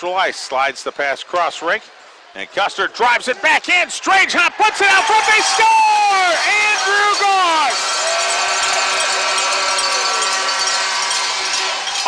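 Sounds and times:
crowd cheering: 4.2 - 12.0.

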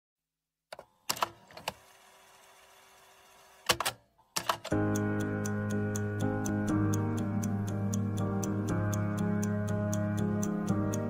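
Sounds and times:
sharp mechanical clicks: 3.6 - 5.0.

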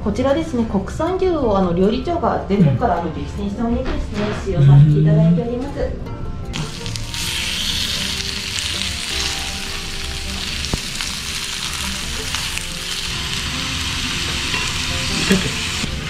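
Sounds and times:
beef sizzling on a grill plate: 6.6 - 16.0.

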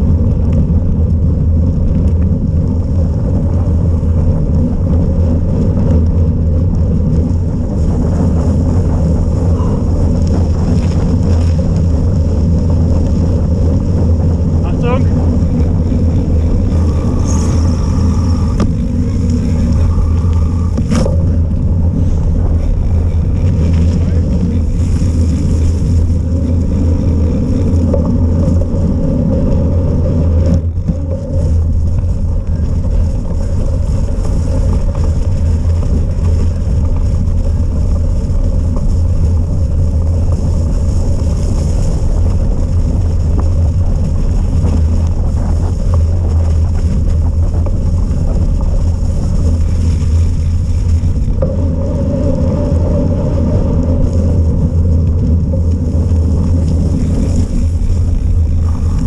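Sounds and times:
bicycle tyre noise: 0.0 - 59.0
wind buffeting microphone: 0.0 - 59.0.

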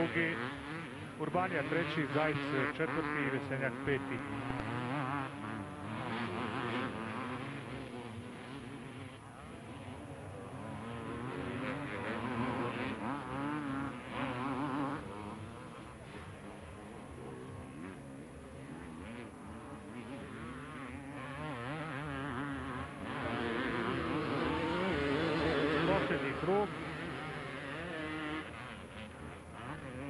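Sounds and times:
motocross engines revving: 0.0 - 30.0.

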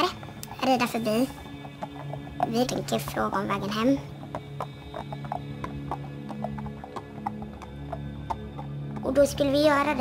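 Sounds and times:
low music drone: 0.0 - 10.0
horse hoofbeats on dirt: 0.7 - 10.0.

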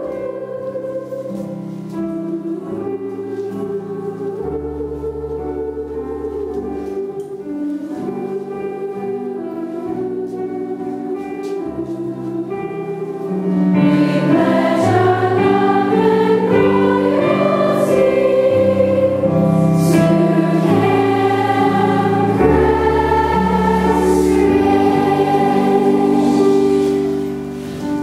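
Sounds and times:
choir singing with accompaniment: 0.0 - 28.0.

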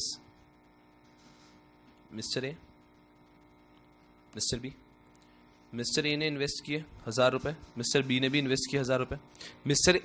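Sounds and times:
faint electrical mains hum: 0.0 - 10.0.

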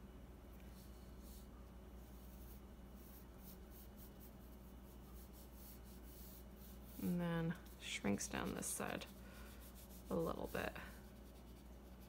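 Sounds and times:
low room hum: 0.0 - 12.0
pencil strokes on paper: 0.7 - 12.0.

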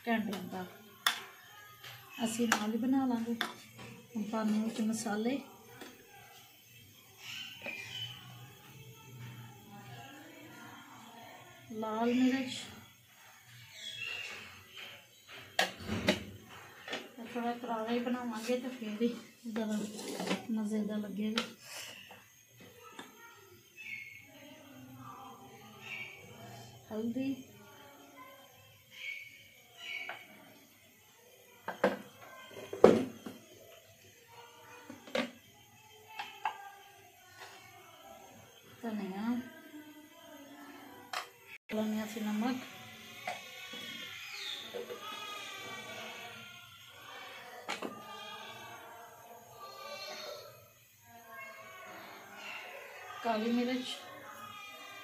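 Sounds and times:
faint indistinct voices: 0.0 - 55.0
faint singing: 15.7 - 55.0.

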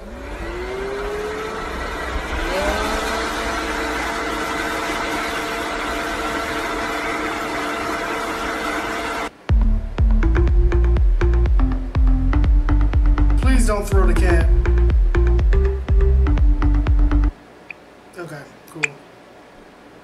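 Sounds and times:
leaf blower whining: 0.0 - 9.3.

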